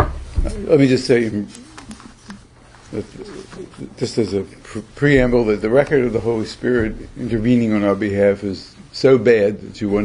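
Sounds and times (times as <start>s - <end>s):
man speaking: 0.4s - 2.0s, 2.9s - 10.0s.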